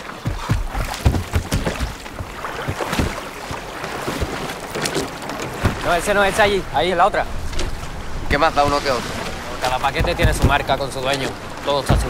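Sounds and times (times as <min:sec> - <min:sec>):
sea water splashing around boat: 0:00.0 - 0:12.0
wind: 0:00.0 - 0:12.0
heavy bales thudding: 0:09.7 - 0:10.8.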